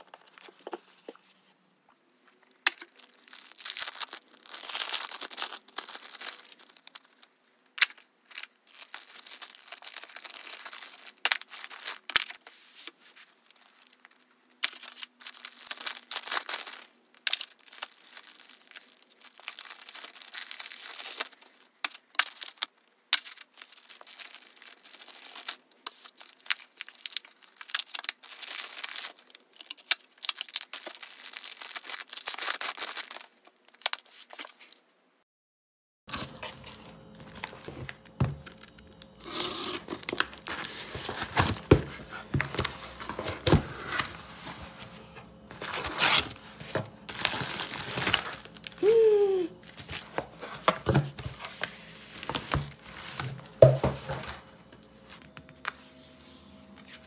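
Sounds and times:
plastic packaging crinkling and tearing: 0:02.3 - 0:34.9, 0:36.1 - 0:57.0.

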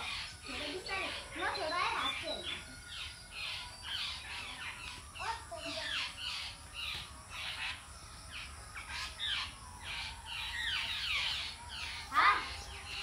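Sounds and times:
birds calling: 0:00.0 - 0:13.0.

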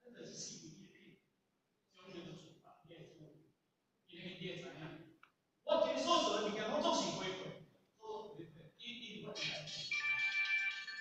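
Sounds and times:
electronic melody: 0:09.9 - 0:11.0.

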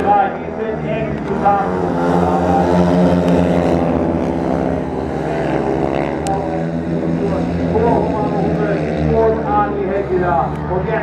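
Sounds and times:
motorcycle engines racing: 0:00.0 - 0:11.0.

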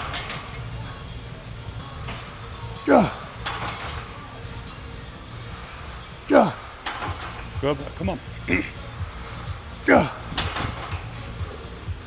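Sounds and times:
man grunting: 0:02.8 - 0:03.4, 0:06.3 - 0:06.7, 0:08.4 - 0:08.8, 0:09.8 - 0:10.4.

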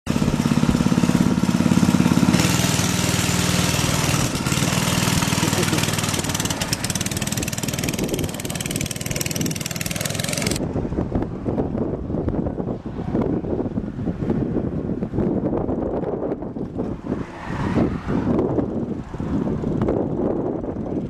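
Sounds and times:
small engine buzzing: 0:00.1 - 0:10.6.

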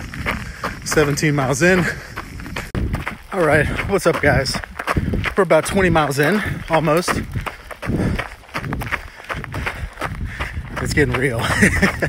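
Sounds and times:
running footsteps: 0:00.0 - 0:12.0
breathing: 0:00.3 - 0:00.8, 0:01.8 - 0:02.8, 0:04.8 - 0:05.3, 0:06.3 - 0:06.7, 0:07.4 - 0:10.7.

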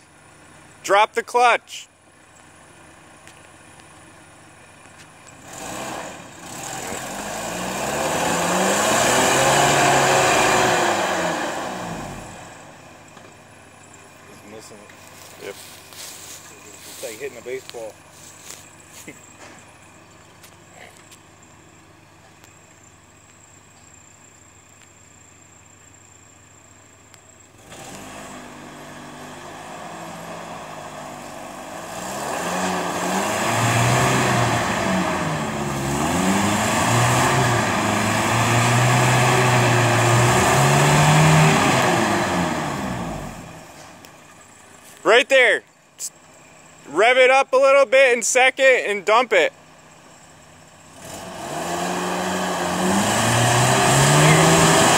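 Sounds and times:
truck engine revving: 0:05.4 - 0:13.2, 0:13.8 - 0:21.2, 0:27.6 - 0:54.9.

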